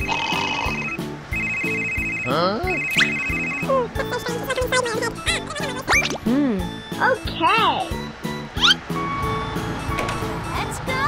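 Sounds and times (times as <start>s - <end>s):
high electronic trilling tone: 0.1s - 3.8s
gliding cartoon sound effect: 2.3s - 6.4s, 8.6s - 8.8s
background music with steady beat: 6.1s - 11.0s.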